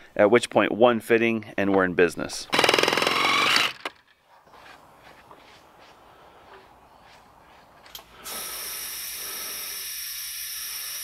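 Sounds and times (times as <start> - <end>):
compressed air hissing: 7.9 - 11.0.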